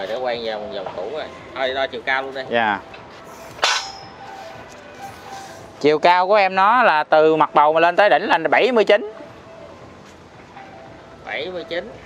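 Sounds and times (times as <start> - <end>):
faint background noise: 0.0 - 12.0
sharp crack with high ringing: 3.6 - 4.2.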